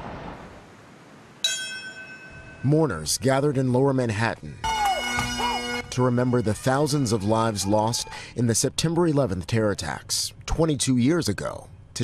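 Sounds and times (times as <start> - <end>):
brass bell ringing: 4.6 - 7.3.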